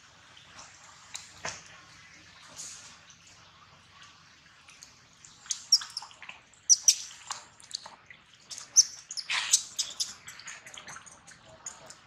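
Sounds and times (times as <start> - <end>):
baby monkey squeaking and shrieking: 5.5 - 6.1, 6.7 - 7.0, 8.5 - 10.2.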